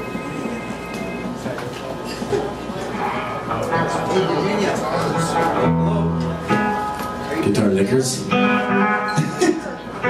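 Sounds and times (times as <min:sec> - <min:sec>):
band instruments tuning notes: 0:00.0 - 0:01.6, 0:02.8 - 0:10.0.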